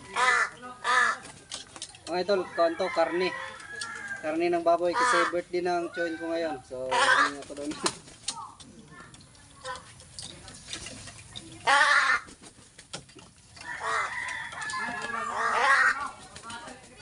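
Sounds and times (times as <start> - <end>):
crows giving harsh begging calls: 0.1 - 1.3, 4.9 - 5.5, 6.9 - 7.4, 11.6 - 12.4, 13.6 - 16.1.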